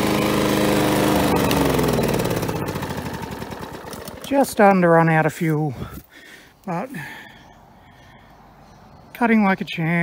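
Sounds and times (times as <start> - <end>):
lawn mower engine running: 0.0 - 7.2.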